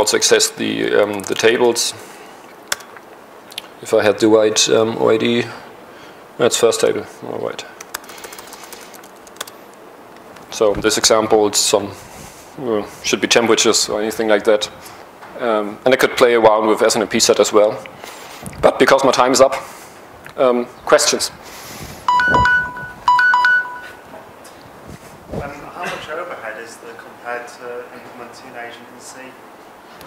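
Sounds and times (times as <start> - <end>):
laptop key clicks: 7.8 - 9.6
electronic two-tone chime: 22.1 - 24.0.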